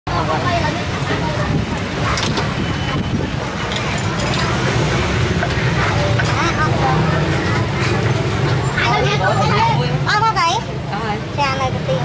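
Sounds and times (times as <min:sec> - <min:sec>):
street traffic rumble: 0:00.1 - 0:12.0
metal kitchen utensils clinking: 0:00.9 - 0:09.1.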